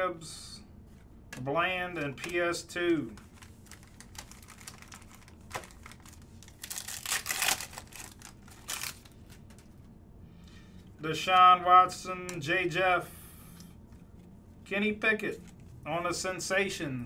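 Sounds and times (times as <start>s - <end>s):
plastic wrapper tearing and crinkling: 3.2s - 9.7s.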